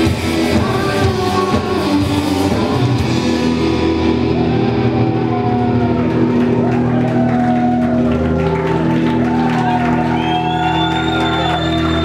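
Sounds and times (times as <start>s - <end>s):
sustained electric guitar and bass: 0.0s - 12.0s.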